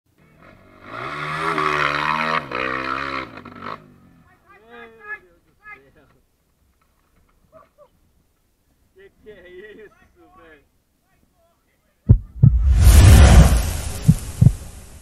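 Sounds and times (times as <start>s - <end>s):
dirt bike engine revving: 0.4s - 4.2s.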